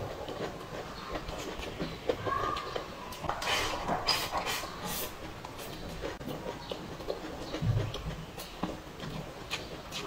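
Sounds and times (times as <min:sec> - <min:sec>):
wet chewing clicks: 0:00.0 - 0:10.0.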